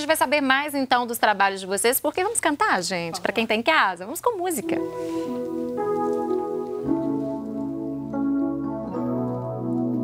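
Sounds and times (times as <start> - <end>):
keyboard playing slow held chords: 4.8 - 10.0.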